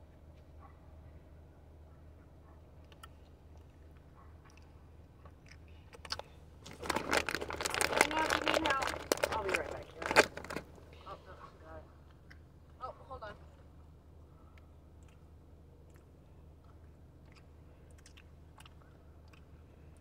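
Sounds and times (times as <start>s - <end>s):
crackling crunching noises: 2.8s - 11.0s.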